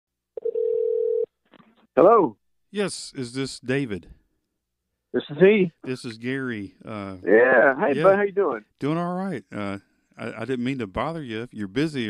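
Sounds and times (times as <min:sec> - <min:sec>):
steady telephone tone: 0:00.4 - 0:01.3.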